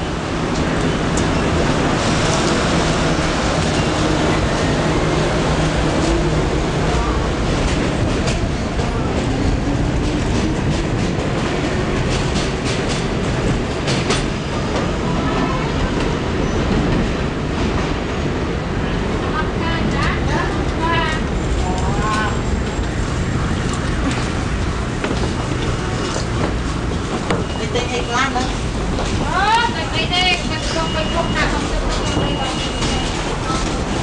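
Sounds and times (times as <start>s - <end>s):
subway train rumble: 0.0s - 34.0s.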